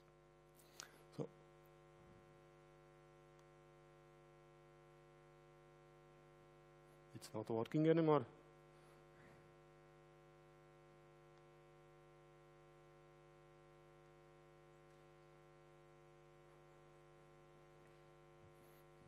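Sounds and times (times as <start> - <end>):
faint electrical mains hum: 0.0 - 19.0.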